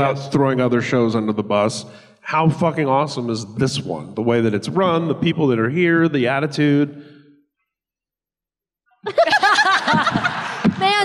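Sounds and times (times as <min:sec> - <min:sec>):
person laughing into a microphone: 0:09.0 - 0:10.8.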